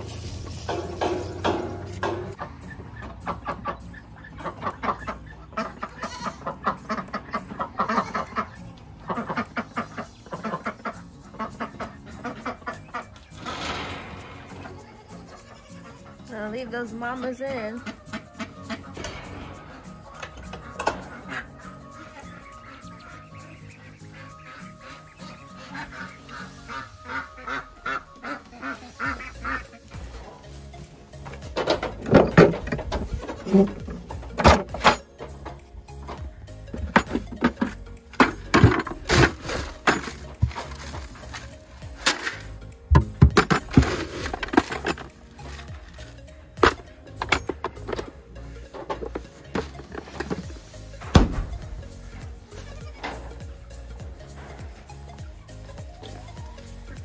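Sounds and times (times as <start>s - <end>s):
background music: 0.0s - 57.0s
ducks quacking: 0.7s - 35.0s.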